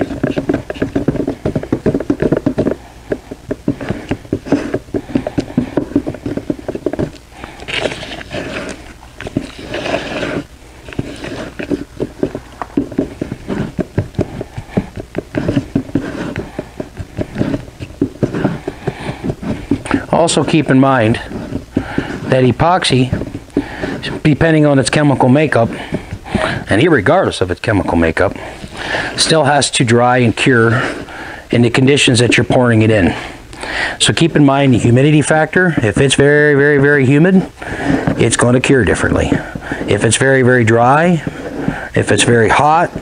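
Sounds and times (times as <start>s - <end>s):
stick scraping plastic cup: 0.0s - 43.0s.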